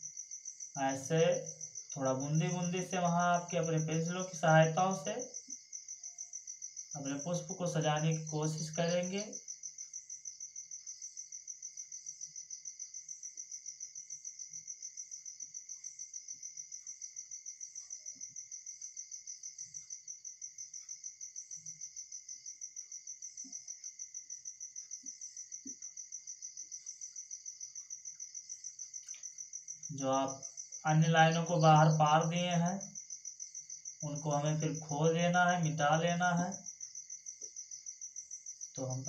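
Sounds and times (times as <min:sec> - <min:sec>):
cricket chirping: 0:00.0 - 0:39.0.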